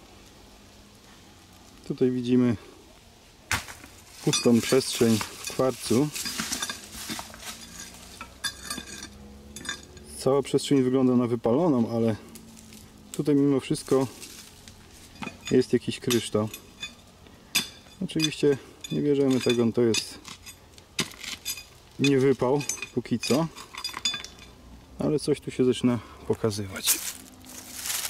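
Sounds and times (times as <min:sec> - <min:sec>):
rock handling crackling and scraping: 0:03.4 - 0:10.9, 0:11.7 - 0:24.6, 0:26.3 - 0:28.0
faint clinks of stone: 0:04.2 - 0:10.1, 0:15.1 - 0:24.6.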